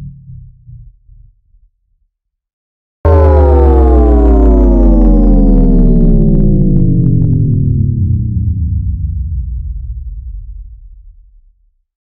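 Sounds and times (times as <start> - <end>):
synthesized bass tone sliding down: 3.1 - 10.0
low rumble: 3.1 - 11.6.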